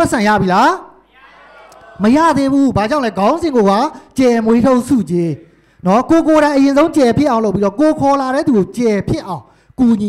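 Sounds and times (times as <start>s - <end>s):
man speaking into microphone: 0.0s - 1.0s, 2.0s - 10.0s.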